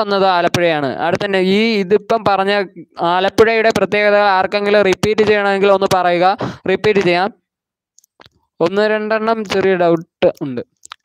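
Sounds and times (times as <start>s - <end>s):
man talking: 0.0s - 7.4s, 8.6s - 10.8s.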